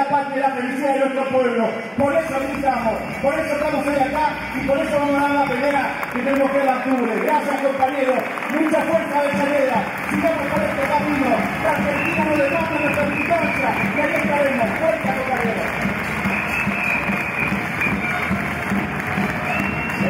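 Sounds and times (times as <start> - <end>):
crowd applauding and cheering: 2.0 - 20.0.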